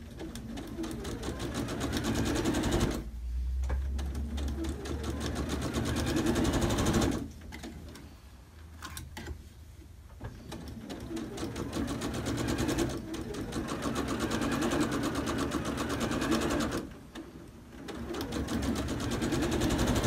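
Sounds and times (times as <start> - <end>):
sewing machine stitching: 0.0 - 3.1, 3.8 - 7.8, 10.4 - 20.0.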